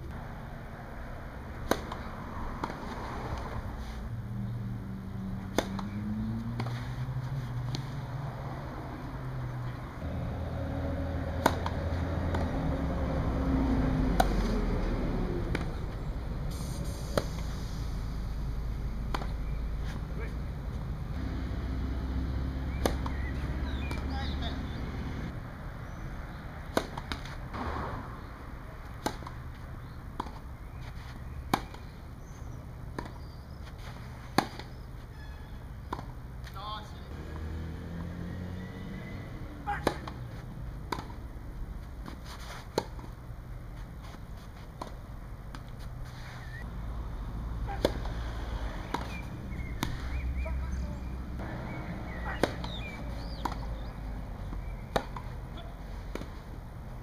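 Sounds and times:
racket hitting tennis ball: 0:01.5 - 0:04.0, 0:05.4 - 0:08.0, 0:09.7 - 0:15.9, 0:17.1 - 0:17.5, 0:18.7 - 0:20.4, 0:21.5 - 0:25.1, 0:26.6 - 0:32.0, 0:32.9 - 0:34.9, 0:39.6 - 0:43.2, 0:43.8 - 0:46.7, 0:47.6 - 0:57.0.

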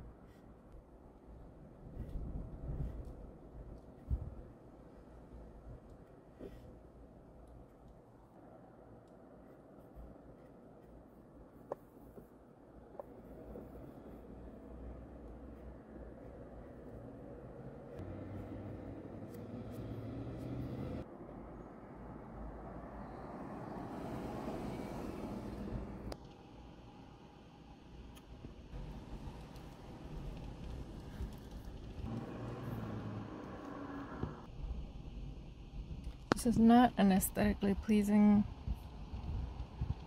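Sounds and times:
road traffic rumble: 0:12.9 - 0:26.2, 0:28.8 - 0:34.6
vehicle passing: 0:17.6 - 0:21.1, 0:21.8 - 0:26.2, 0:28.9 - 0:34.5.

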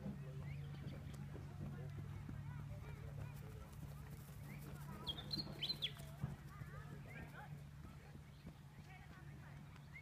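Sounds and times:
horse hoofbeats on grass: 0:00.0 - 0:10.0.

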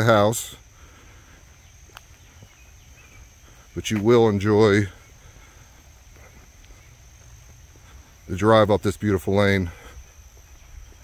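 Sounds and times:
footsteps on pavement: 0:00.0 - 0:11.0
high insect drone: 0:00.0 - 0:11.0.

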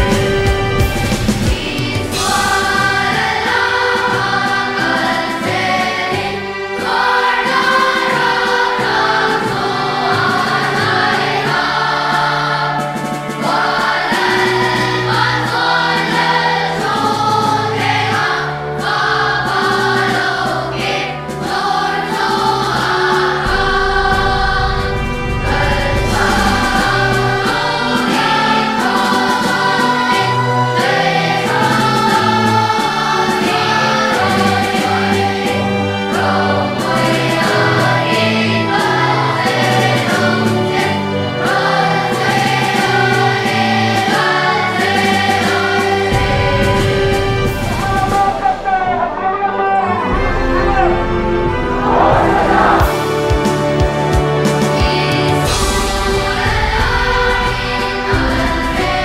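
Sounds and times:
children's choir singing a hymn: 0:00.0 - 0:59.0
low bass line: 0:51.2 - 0:53.5.

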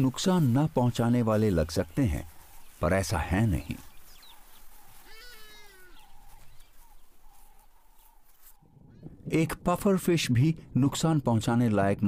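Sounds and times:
faint natural background: 0:00.0 - 0:12.0
animal call with falling pitch: 0:05.0 - 0:06.2.

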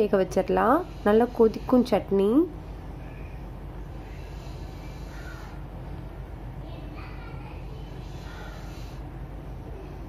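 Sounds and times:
low background hum: 0:00.0 - 0:10.0
faint bird calls: 0:04.0 - 0:05.7, 0:07.4 - 0:09.0.

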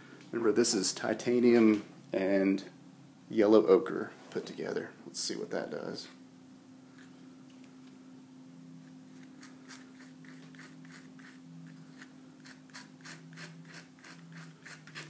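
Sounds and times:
faint steady hum: 0:00.0 - 0:15.0
palette knife scraping paint: 0:09.1 - 0:15.0.

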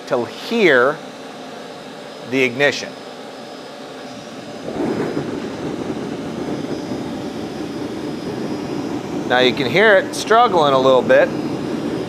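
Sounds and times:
forge burner hissing and rushing: 0:00.0 - 0:12.0.

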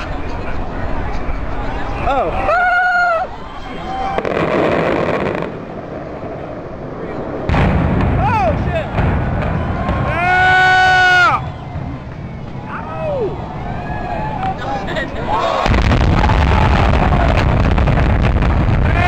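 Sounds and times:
spectators whooping and cheering: 0:00.9 - 0:04.4, 0:09.2 - 0:17.6
fireworks crackling: 0:03.9 - 0:13.3, 0:15.6 - 0:19.0
rumble of explosive bangs: 0:04.2 - 0:10.7, 0:15.6 - 0:19.0.

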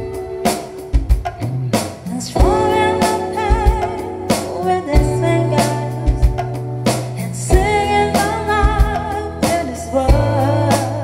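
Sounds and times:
deep beats: 0:00.0 - 0:11.0
electric guitar: 0:00.0 - 0:11.0
woman singing: 0:02.0 - 0:11.0.

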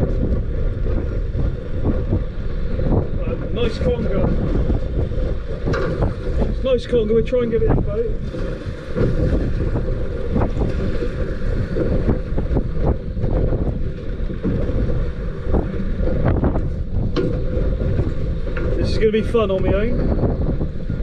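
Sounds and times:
water slapping boat hull: 0:00.0 - 0:21.0
wind buffeting microphone: 0:00.0 - 0:21.0.

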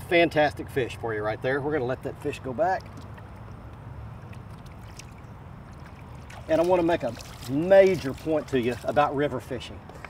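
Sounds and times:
faint water sounds: 0:00.0 - 0:10.0.

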